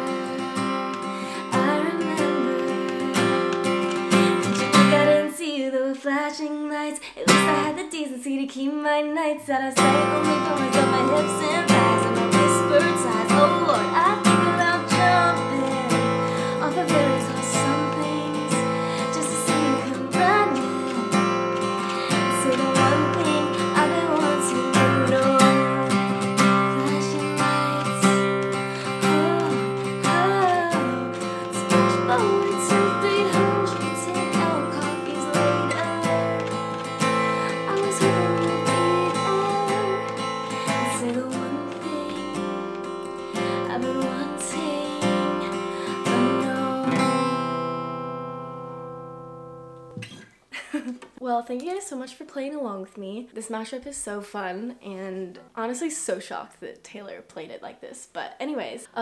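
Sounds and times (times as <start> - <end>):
acoustic guitar strumming: 0.0 - 5.3, 7.3 - 7.8, 9.8 - 50.3
person singing: 0.0 - 47.9.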